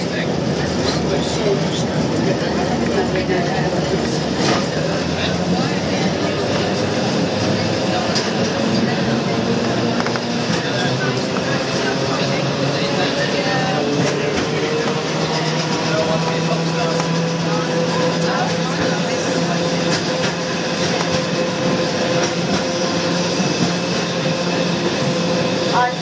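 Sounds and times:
tram running on rails: 0.0s - 26.0s
tram whine: 0.0s - 26.0s.

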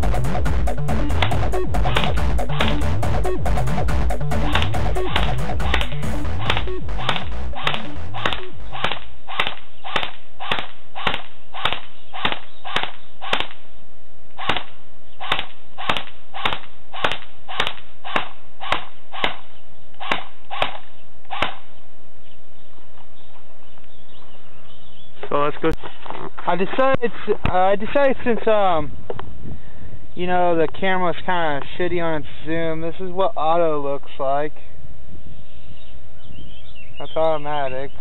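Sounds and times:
background music: 0.0s - 8.8s
airsoft gun single shots: 4.5s - 13.6s, 14.4s - 19.4s, 20.0s - 21.6s.

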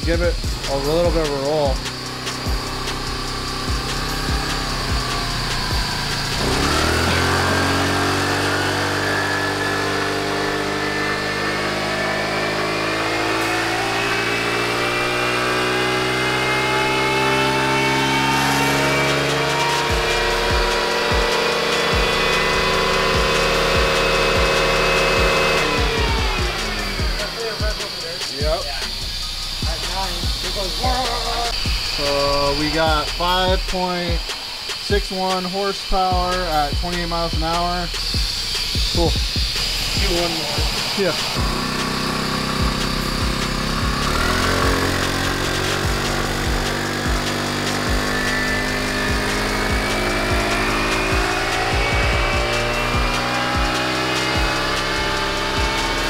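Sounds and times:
motorcycle engine revving: 0.0s - 56.0s
roller dynamometer: 0.0s - 56.0s.

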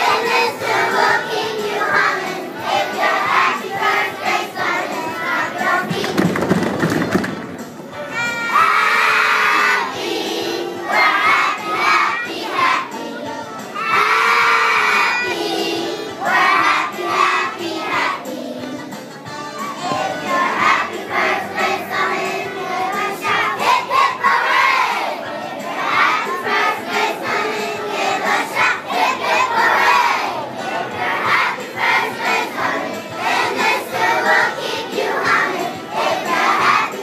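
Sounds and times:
children singing in unison: 0.0s - 6.4s, 7.9s - 37.0s.

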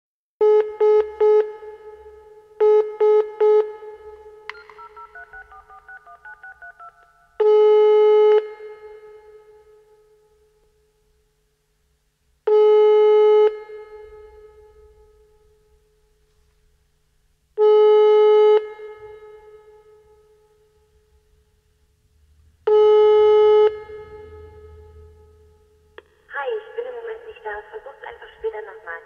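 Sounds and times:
touch-tone dialing notes: 4.5s - 7.3s
telephone ringing tone with echo: 4.5s - 8.1s.

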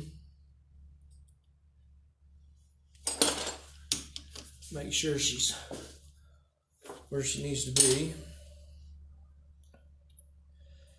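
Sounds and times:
steady low hum: 0.0s - 10.9s.

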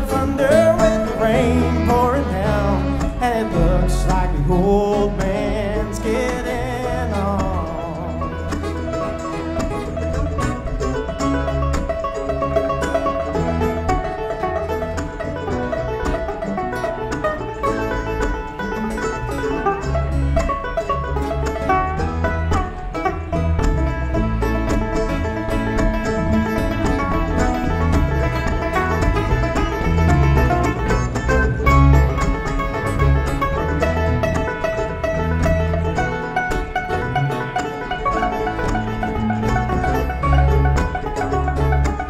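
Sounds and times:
picked banjo: 0.0s - 42.0s
string band playing: 0.0s - 42.0s.

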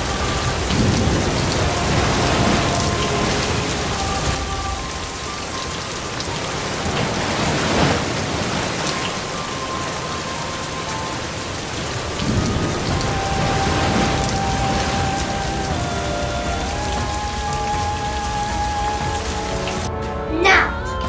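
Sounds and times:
low rumbles: 0.0s - 19.9s
rain falling on wet tarmac: 0.0s - 19.9s.

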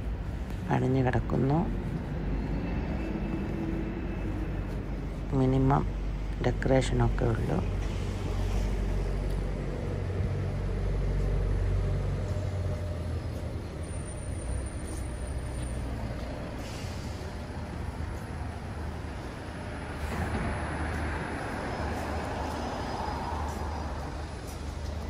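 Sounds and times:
steady road noise: 0.0s - 25.0s
vehicle engine rumble: 0.0s - 25.0s
hiss: 16.5s - 17.6s.

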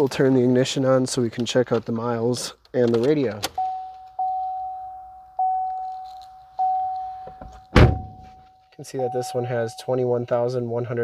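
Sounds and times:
dashboard warning chime: 3.6s - 10.6s.

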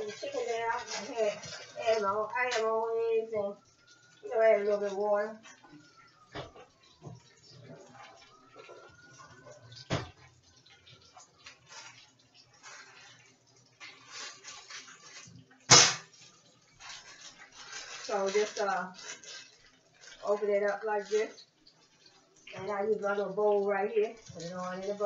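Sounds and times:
plastic bag rustling: 0.0s - 3.2s, 11.1s - 22.2s.

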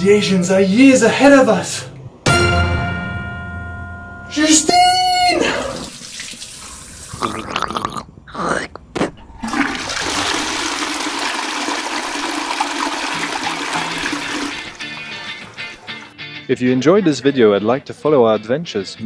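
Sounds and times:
toilet flushing: 5.4s - 7.4s, 9.3s - 16.1s.

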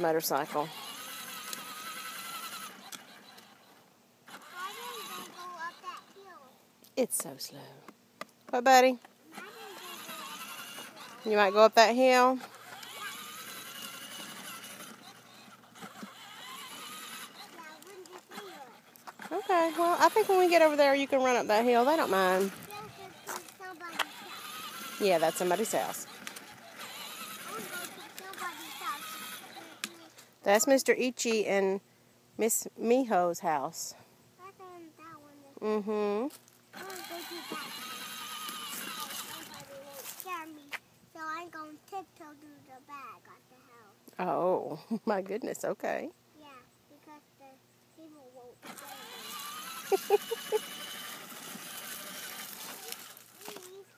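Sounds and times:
toy electric motor whining: 0.0s - 6.4s, 8.5s - 31.4s, 35.0s - 40.8s, 48.0s - 53.9s
plastic wheels on pavement: 0.0s - 31.6s, 35.0s - 43.4s, 48.0s - 53.9s
toddler vocalizing: 4.4s - 6.4s, 9.3s - 11.3s, 12.8s - 13.7s, 26.6s - 30.2s, 36.8s - 40.7s.

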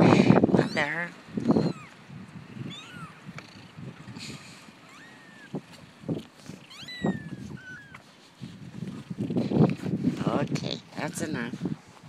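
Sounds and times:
kittens mewing: 0.0s - 2.0s, 2.6s - 5.7s, 6.5s - 8.0s.

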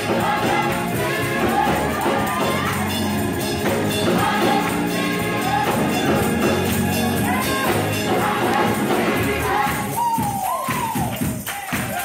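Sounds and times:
bass line: 0.0s - 10.0s
drum kit: 0.0s - 12.0s
gospel choir singing: 0.0s - 12.0s
keyboard: 0.0s - 12.0s.

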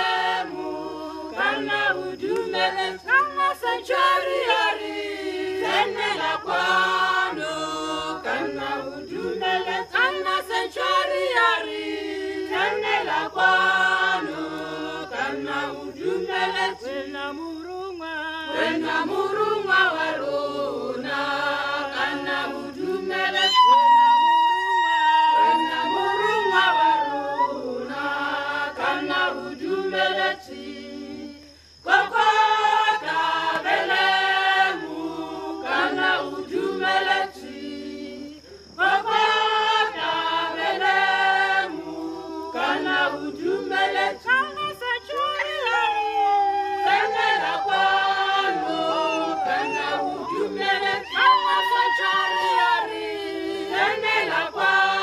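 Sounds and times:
women's choir singing a cappella: 0.0s - 55.0s.

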